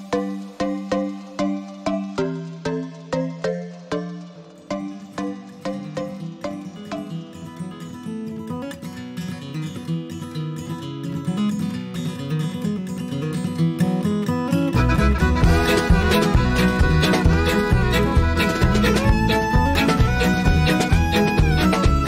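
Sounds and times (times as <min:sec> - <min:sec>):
acoustic guitar country song: 0:05.3 - 0:22.0.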